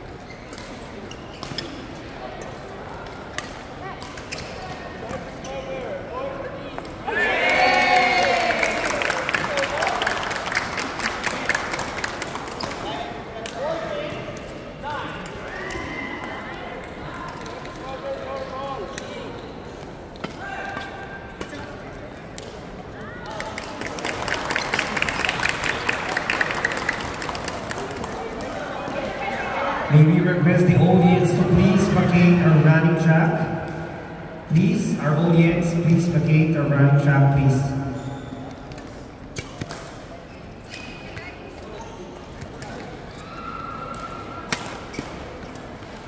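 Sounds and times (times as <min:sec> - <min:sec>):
shoes squeaking on court: 0:00.0 - 0:02.6, 0:04.2 - 0:05.8, 0:37.8 - 0:39.6
audience applauding: 0:07.6 - 0:12.4, 0:23.6 - 0:28.0.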